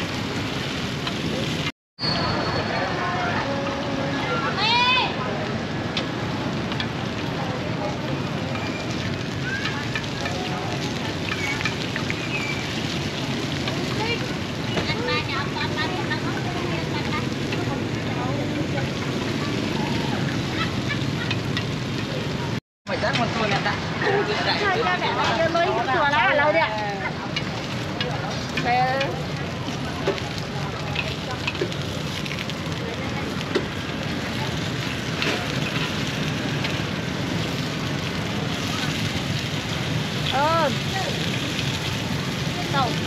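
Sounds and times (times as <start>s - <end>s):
traffic noise: 0.0s - 43.0s
indistinct voices chattering: 1.4s - 43.0s
batter sizzling in pans: 2.4s - 43.0s.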